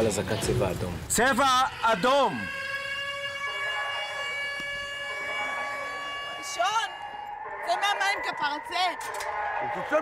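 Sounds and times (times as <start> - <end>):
warning siren steady tone: 1.7 - 9.1.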